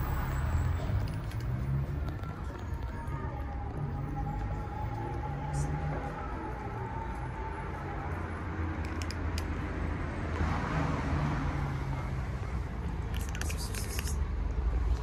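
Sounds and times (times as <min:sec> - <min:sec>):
cats crunching dry kibble: 0:00.8 - 0:05.2, 0:08.8 - 0:09.5, 0:13.1 - 0:15.0.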